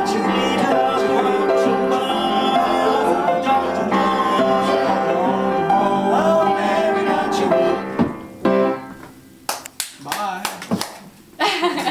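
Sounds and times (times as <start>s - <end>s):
sharp hand claps: 9.5s - 11.1s.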